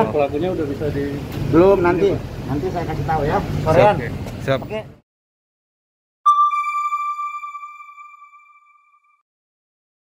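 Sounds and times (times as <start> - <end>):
electronic chime: 6.3 - 9.2.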